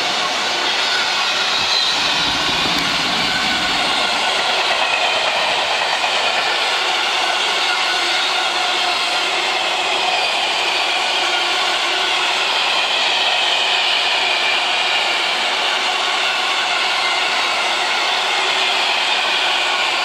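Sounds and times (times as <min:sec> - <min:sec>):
high whining tones: 0:00.0 - 0:08.4.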